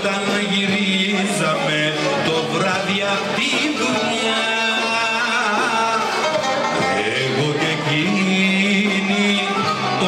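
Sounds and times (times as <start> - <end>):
live band music: 0.0 - 10.0
plucked string instrument melody: 0.0 - 10.0.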